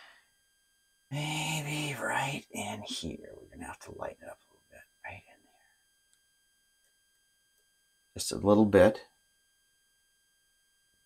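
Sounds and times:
faint high-pitched tones: 0.0s - 11.0s.

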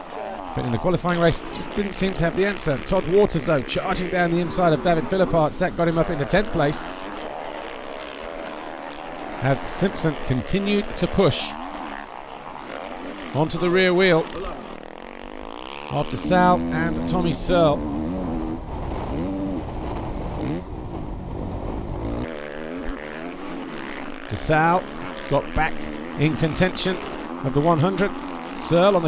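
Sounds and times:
low wind rumble: 0.0s - 29.0s
motocross bike engines racing: 0.0s - 29.0s.

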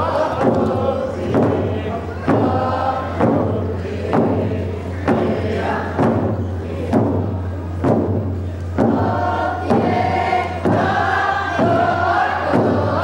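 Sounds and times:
group of voices chanting: 0.0s - 7.4s, 8.8s - 13.0s
steady drum beat: 0.0s - 13.0s.

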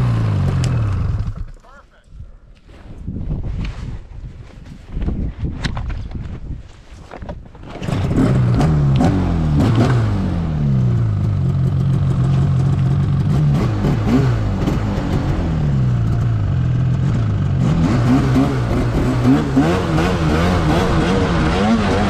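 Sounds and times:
snowmobile engine revving: 0.0s - 1.4s, 7.8s - 22.0s.

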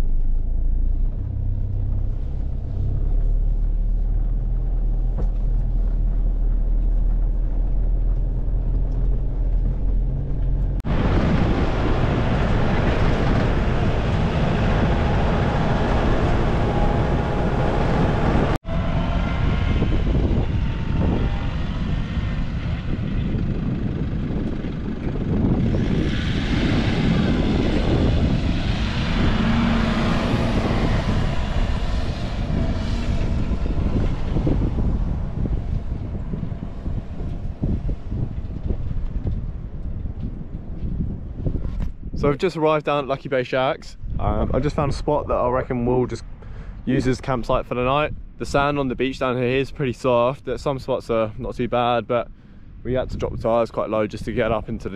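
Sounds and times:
vehicle driving on sand: 0.0s - 54.9s.

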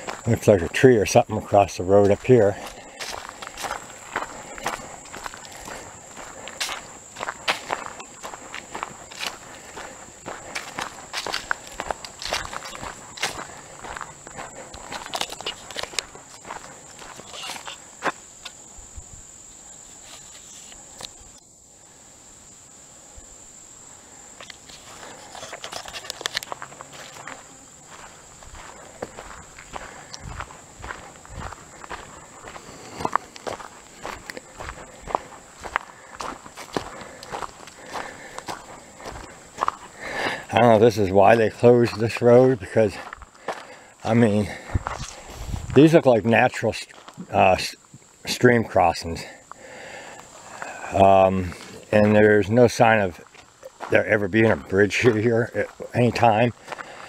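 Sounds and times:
footsteps crunching on gravel: 0.0s - 18.7s, 24.3s - 57.0s
high-pitched insect drone: 0.0s - 56.8s.

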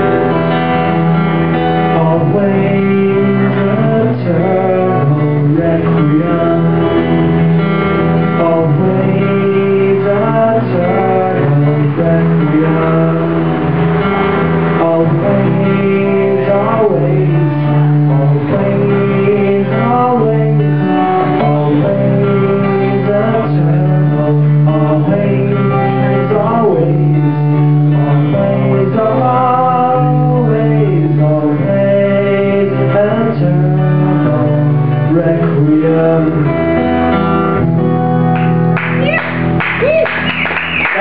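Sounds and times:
acoustic guitar chords: 0.0s - 41.0s
man singing: 1.5s - 38.0s.

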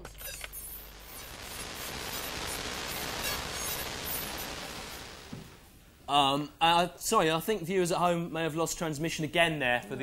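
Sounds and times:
television static hiss: 0.0s - 10.0s.

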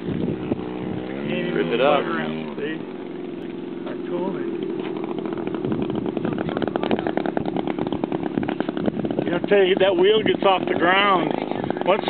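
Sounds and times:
model plane engine buzzing: 0.0s - 12.0s.

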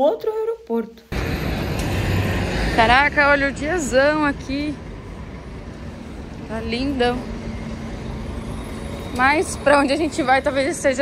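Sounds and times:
low rumble of road vehicles: 1.1s - 11.0s.

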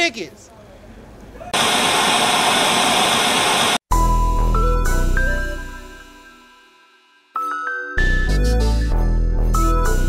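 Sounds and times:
music with bell-like notes: 4.0s - 10.0s.

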